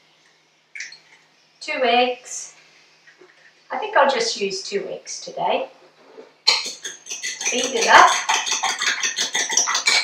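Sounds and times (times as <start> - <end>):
fork beating eggs in bowl: 6.5 - 10.0.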